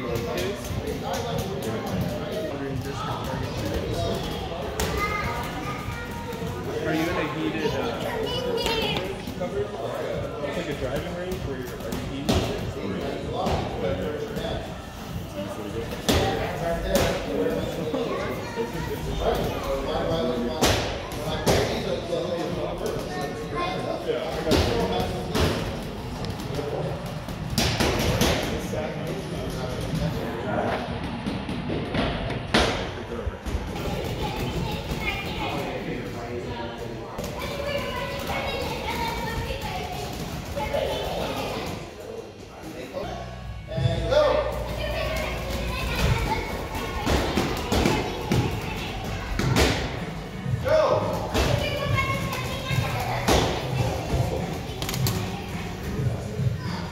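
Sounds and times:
music: 43.4 - 56.9.

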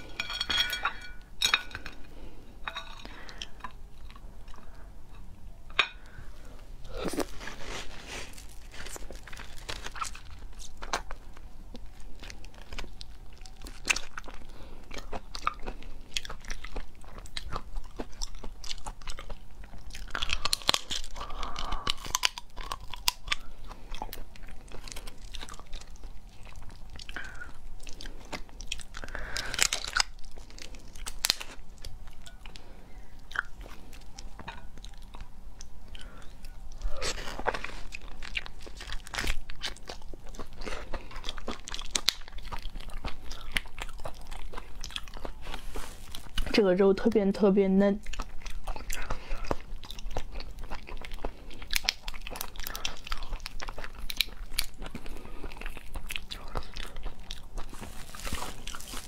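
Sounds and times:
biting and chewing: 1.0 - 46.6, 48.0 - 59.0.

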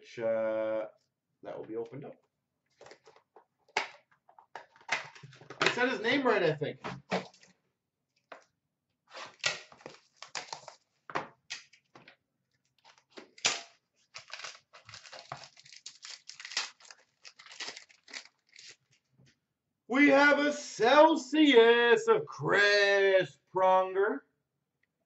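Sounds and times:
wrappers tearing and crinkling: 9.1 - 10.8, 12.8 - 19.0.

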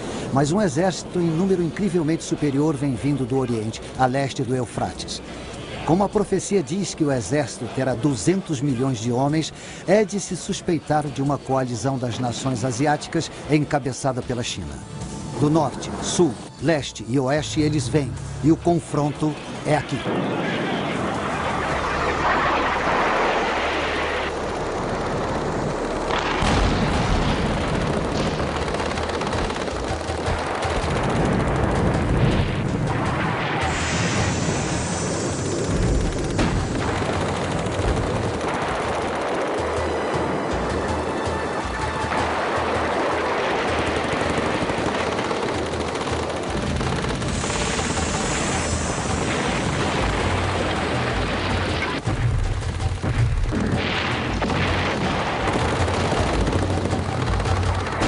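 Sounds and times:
music: 0.0 - 22.9, 23.7 - 58.0
machine-gun fire: 26.0 - 35.0, 35.6 - 58.0
explosions: 26.1 - 28.6, 30.2 - 39.2, 47.1 - 58.0.

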